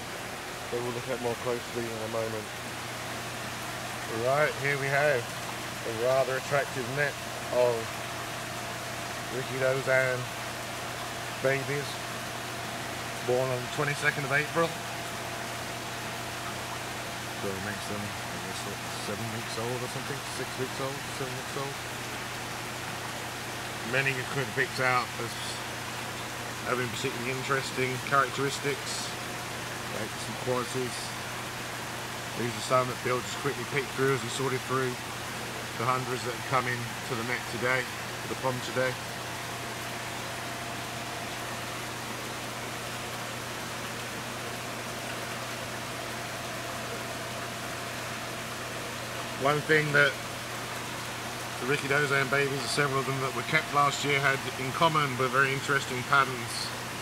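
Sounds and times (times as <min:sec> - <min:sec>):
low steady hum: 0:00.0 - 0:57.0
rushing water: 0:00.0 - 0:57.0.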